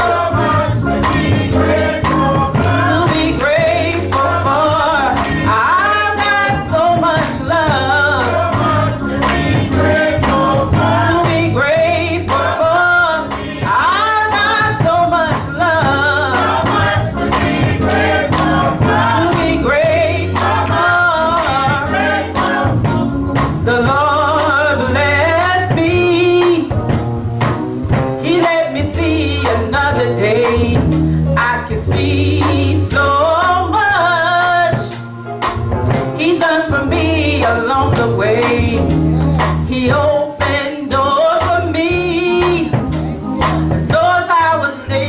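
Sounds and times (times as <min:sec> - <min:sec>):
gospel choir singing over beat: 0:00.0 - 0:45.0.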